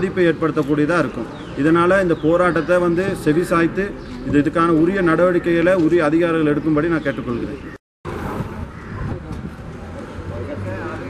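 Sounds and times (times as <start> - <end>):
crowd voices: 0.0 - 11.0
rumbling street noise: 0.0 - 11.0.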